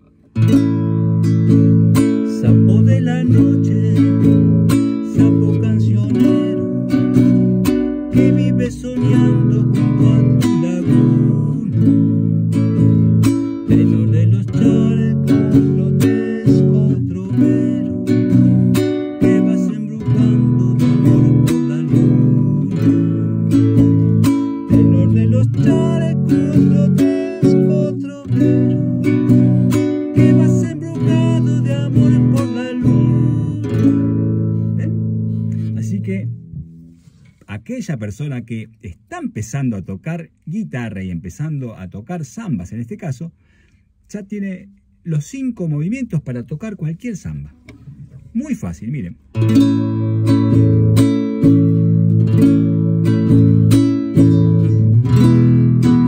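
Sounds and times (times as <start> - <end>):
classical guitar strummed: 0.0 - 37.4, 49.2 - 56.0.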